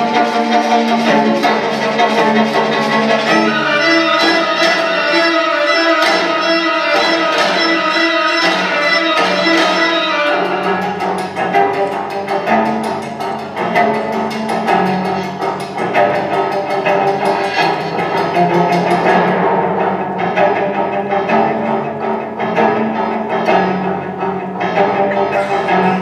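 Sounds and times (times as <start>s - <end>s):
fast ticking percussion: 0.0s - 26.0s
low bowed strings: 0.0s - 26.0s.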